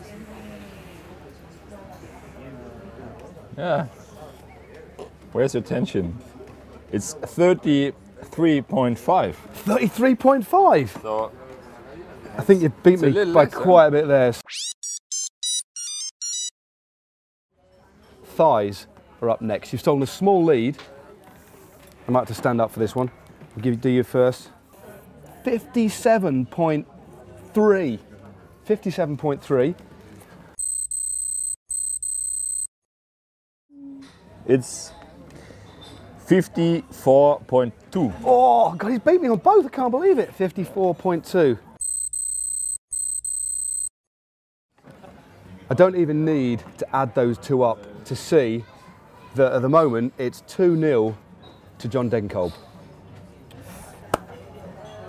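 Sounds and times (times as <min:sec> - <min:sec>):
electronic beeps stepping in pitch: 0:14.4 - 0:16.5
high-pitched electronic beeping tone: 0:14.4 - 0:16.5, 0:30.6 - 0:32.7, 0:41.8 - 0:43.9.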